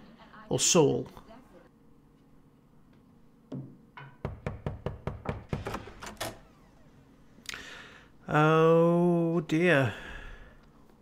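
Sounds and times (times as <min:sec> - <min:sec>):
knocking on a door: 0:03.5 - 0:06.0.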